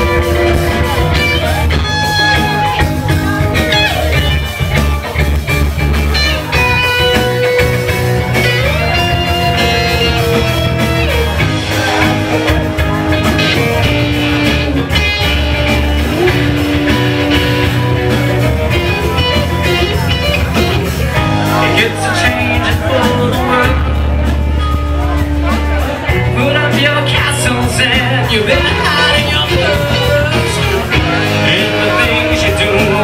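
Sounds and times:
electric guitar sliding notes: 0.0 - 33.0
live punk rock band: 0.0 - 33.0.

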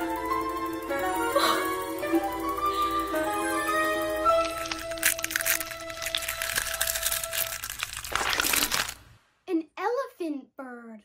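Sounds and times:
held music chord: 0.0 - 7.4
cartoon egg-hatching crackling: 1.0 - 9.2.

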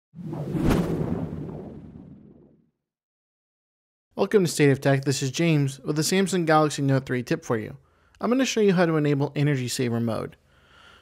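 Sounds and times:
whoosh sound effect: 0.2 - 2.5
low rumble: 0.2 - 2.6.

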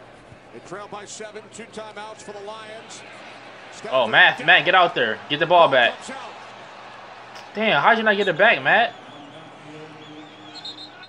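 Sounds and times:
low background noise: 0.0 - 11.0
television sports commentary: 0.0 - 11.0.

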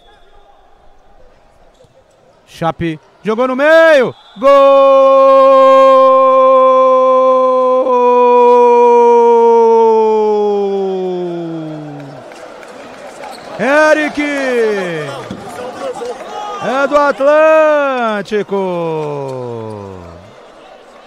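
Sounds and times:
excited shouted commentary: 2.6 - 12.2, 13.6 - 20.3
commentator's long goal shout: 3.6 - 12.2, 16.3 - 20.3.

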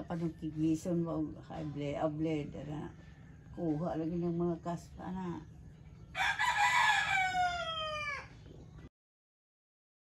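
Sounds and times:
rooster crowing: 6.1 - 8.4.

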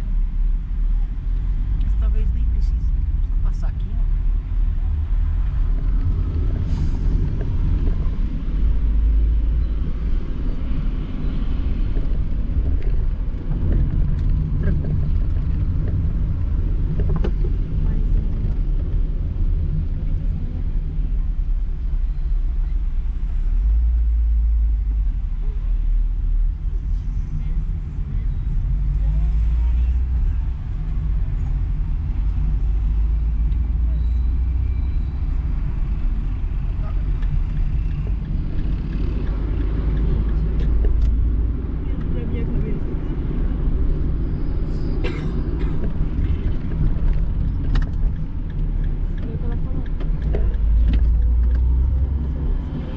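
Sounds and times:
car engine and tyres rumbling: 0.0 - 52.9.

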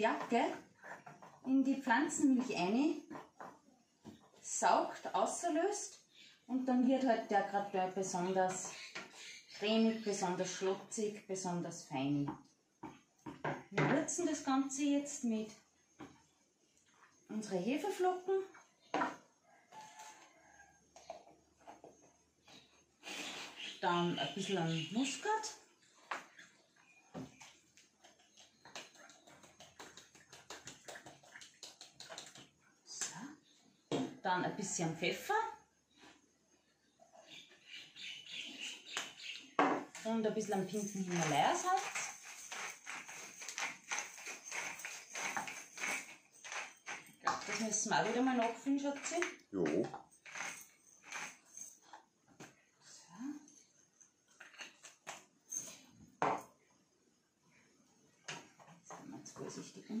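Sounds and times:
spice mill clicking and rasping: 40.7 - 51.5.

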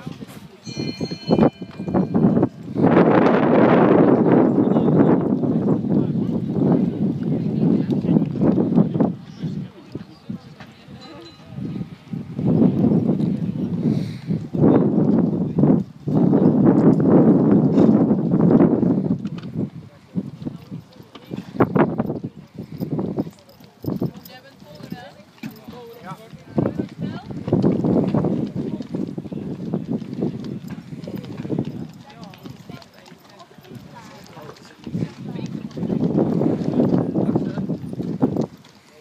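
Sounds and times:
people talking: 0.0 - 39.0
wind buffeting microphone: 0.0 - 39.0
horse hoofbeats on sand: 20.2 - 39.0.

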